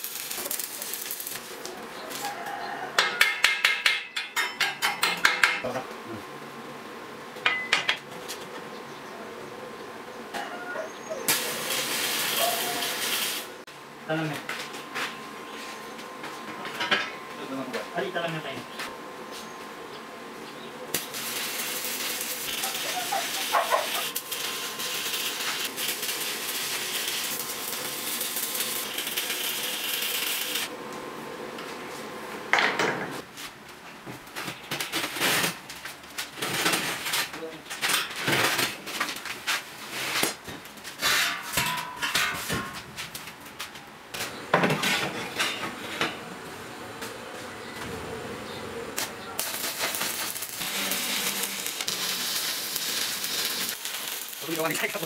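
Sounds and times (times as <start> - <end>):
arc welding hiss: 0.0 - 2.3, 11.2 - 13.6, 20.9 - 30.7, 49.0 - 55.0
steel tubes and tools clanking: 41.0 - 42.8.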